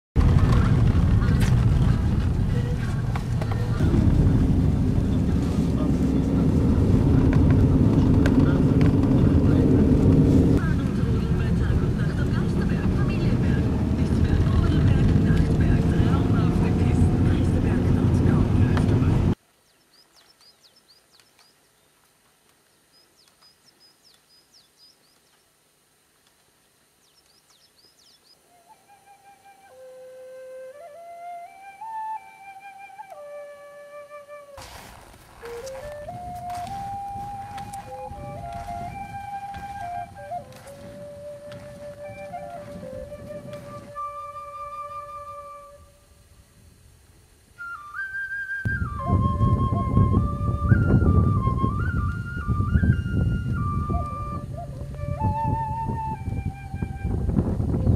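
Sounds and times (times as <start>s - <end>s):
car engine and road noise: 0.2s - 19.4s
flute music: 1.7s - 11.1s, 28.4s - 46.2s, 47.6s - 57.9s.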